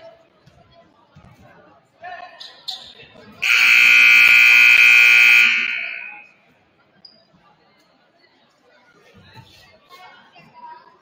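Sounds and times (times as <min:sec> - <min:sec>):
scoreboard buzzer horn: 0:03.4 - 0:06.3.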